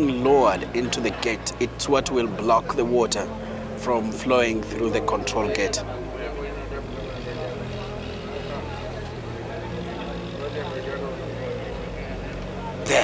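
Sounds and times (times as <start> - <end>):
crane engine humming: 5.9 - 13.0.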